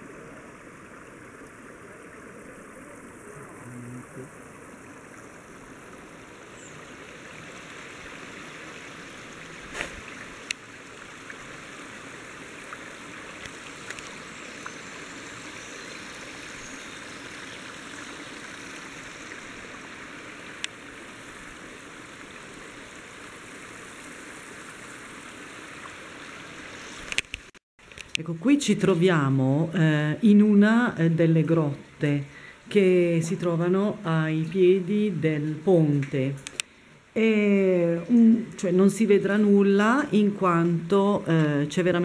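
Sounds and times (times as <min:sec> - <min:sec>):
stream running over stones: 0:00.0 - 0:42.0.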